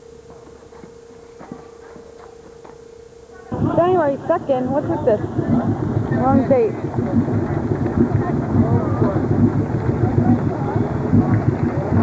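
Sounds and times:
faint voices talking: 1.2 - 12.0
low engine rumble: 3.2 - 12.0.

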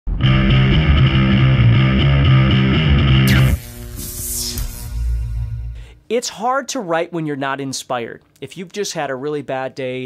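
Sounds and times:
distorted electric guitar riff: 0.1 - 6.0.

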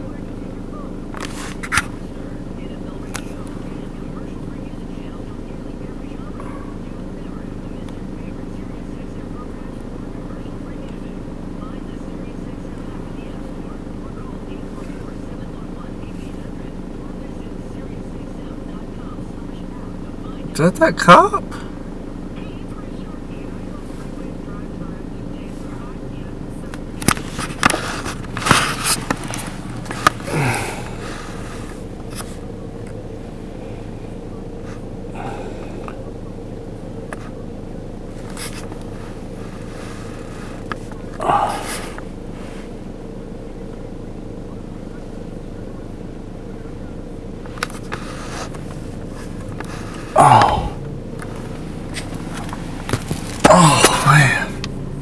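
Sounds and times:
steady low hum: 0.0 - 55.0
vehicle engine idling: 0.0 - 55.0.

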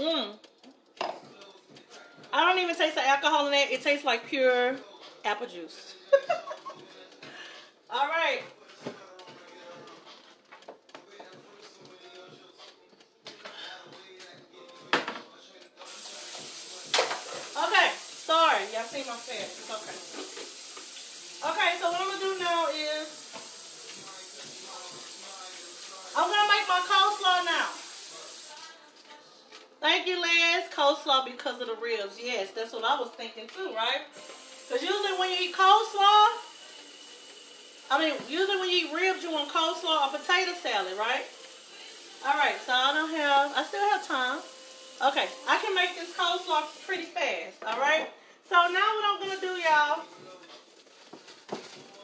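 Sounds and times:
woman talking: 2.3 - 5.9, 7.9 - 8.5, 17.5 - 20.1, 21.4 - 23.2, 26.2 - 27.8, 29.8 - 36.5, 37.9 - 41.3, 42.2 - 44.4, 45.0 - 50.1
tap water running: 15.8 - 28.6, 34.2 - 47.1.

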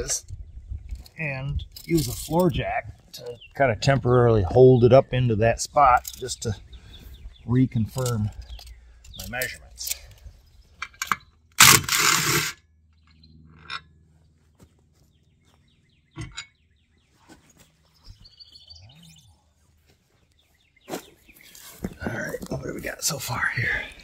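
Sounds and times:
birds chirping faintly: 0.0 - 11.6, 12.6 - 24.0.

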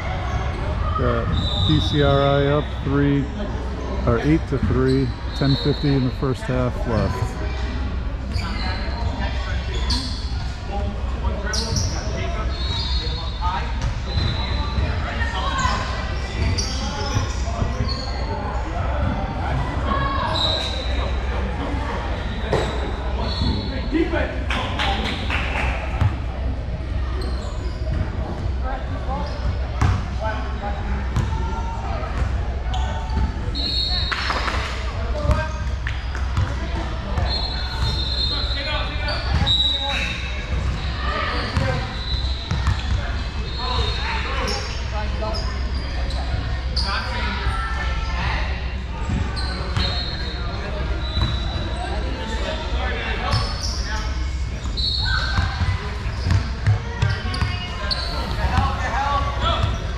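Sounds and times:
indistinct voices: 0.0 - 8.5
sneakers squeaking: 0.0 - 24.2, 24.8 - 59.9.

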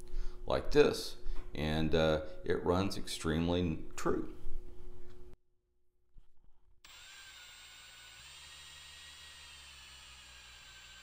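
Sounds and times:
power drill spinning: 6.8 - 11.0.

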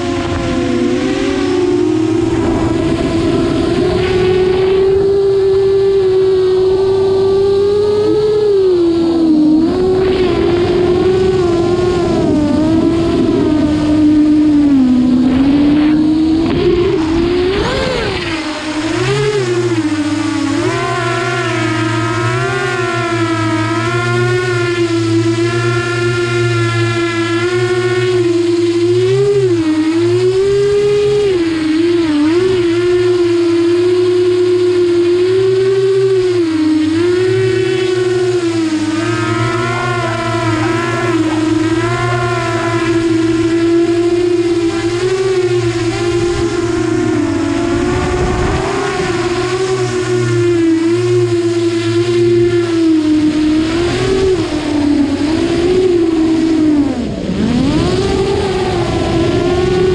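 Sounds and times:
drone propellers whining: 0.0 - 59.9
steady low hum: 0.0 - 59.9.

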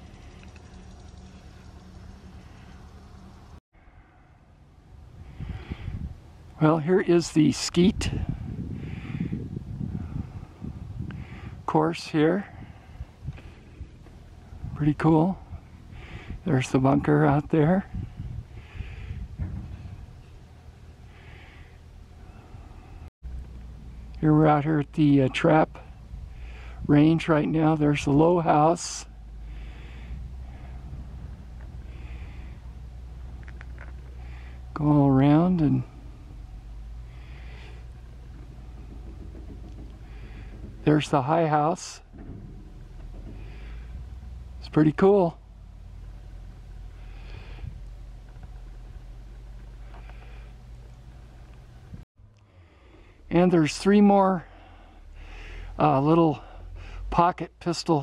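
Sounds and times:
wind rumble on microphone: 4.9 - 6.4, 7.2 - 20.6, 25.8 - 28.4, 29.5 - 34.2, 35.6 - 49.4.

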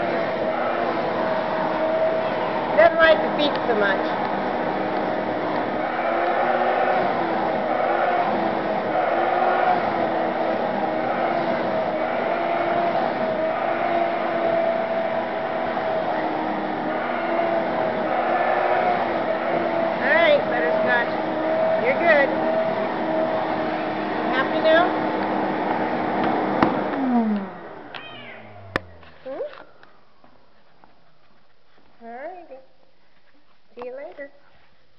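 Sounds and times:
vacuum cleaner humming: 0.0 - 29.6
cat meowing: 27.9 - 29.0.

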